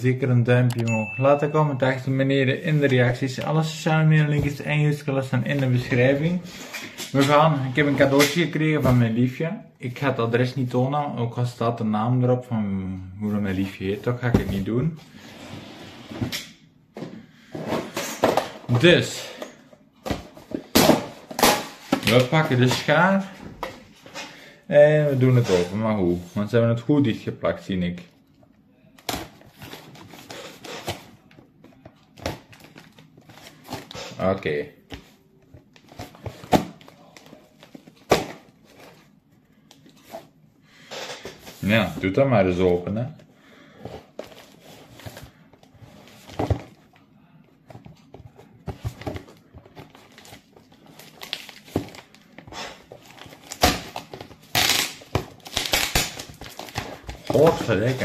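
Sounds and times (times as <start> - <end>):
cardboard and tape rustling: 29.0 - 39.2, 41.2 - 47.0, 47.6 - 58.0
packing tape crinkling: 53.0 - 58.0.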